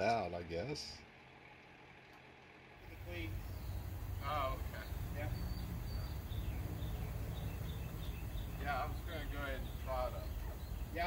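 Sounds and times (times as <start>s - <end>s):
low steady hum: 2.7s - 11.0s.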